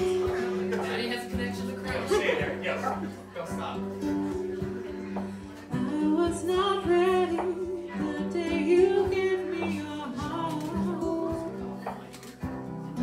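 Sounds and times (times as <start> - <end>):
acoustic band playing: 0.0 - 13.0.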